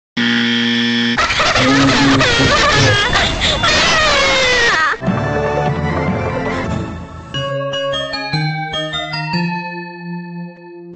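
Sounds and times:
electronic buzzing tone: 0:00.2 - 0:02.9
music: 0:05.0 - 0:10.9.

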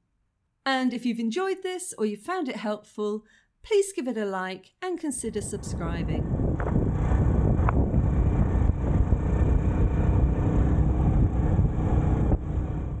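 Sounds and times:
wind rumble: 0:05.2 - 0:13.0
motorcycle road noise: 0:05.3 - 0:13.0.

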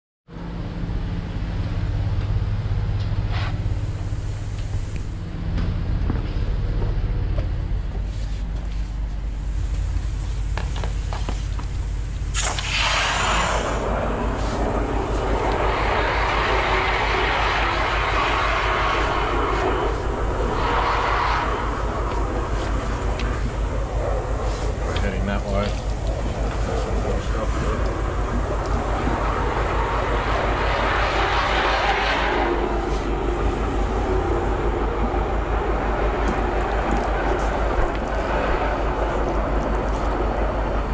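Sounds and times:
drain jetter engine running: 0:09.4 - 0:40.9
water jet rushing hiss: 0:12.2 - 0:34.9.

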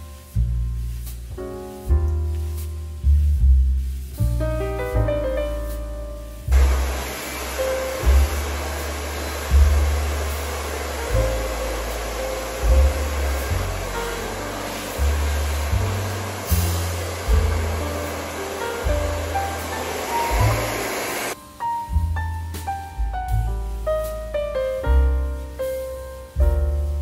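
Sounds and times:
music with deep bass line: 0:00.0 - 0:27.0
hair dryer blowing: 0:06.5 - 0:21.4.

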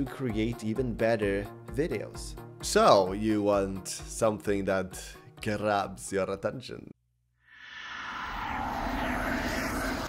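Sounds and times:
whoosh riser effect: 0:07.5 - 0:10.0.

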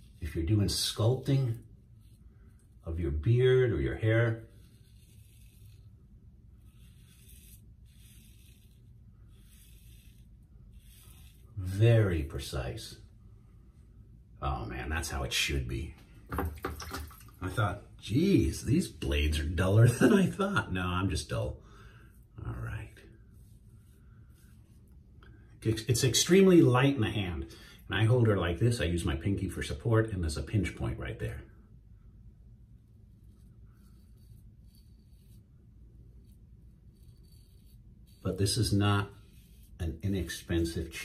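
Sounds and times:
razor scraping stubble: 0:00.0 - 0:12.5, 0:32.8 - 0:41.0.

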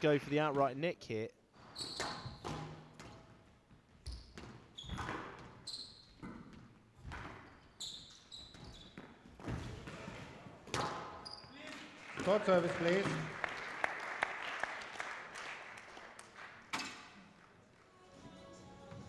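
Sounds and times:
shoes squeaking on court floor: 0:01.5 - 0:13.3.

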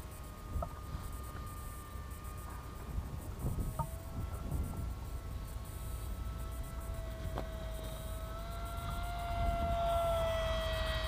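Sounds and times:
electric motor propeller whine: 0:00.0 - 0:11.0
wind rumble on microphone: 0:00.0 - 0:11.0.

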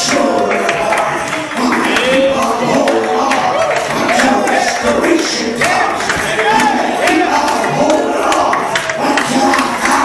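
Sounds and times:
congregation singing: 0:00.0 - 0:10.0
sharp rhythmic beat: 0:00.0 - 0:10.0.

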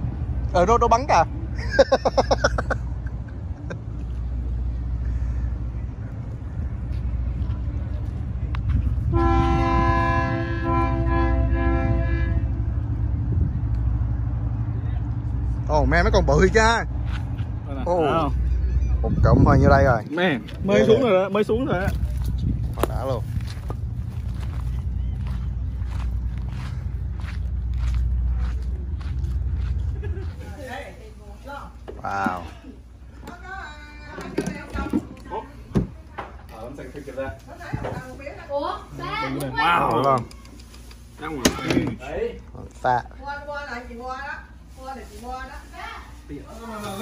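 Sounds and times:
constant low rumble: 0:00.0 - 0:47.0
horn blast: 0:09.0 - 0:12.8
footsteps on pavement: 0:17.0 - 0:17.6, 0:21.6 - 0:30.9.

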